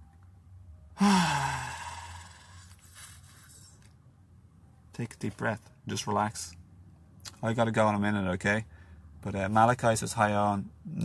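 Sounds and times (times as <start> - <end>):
man sighing: 1.0 - 2.8.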